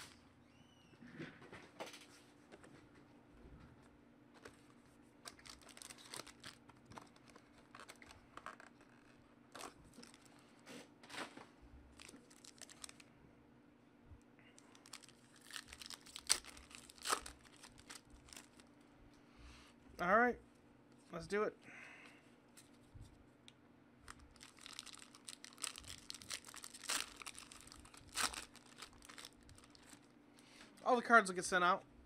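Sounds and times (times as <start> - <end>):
foil wrapper crinkling and tearing: 5.2 - 10.4, 11.9 - 13.0, 14.6 - 18.7, 24.1 - 30.1.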